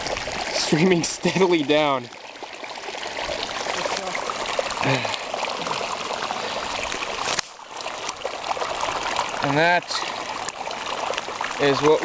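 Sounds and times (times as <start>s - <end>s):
water rushing over ground: 0.0s - 12.0s.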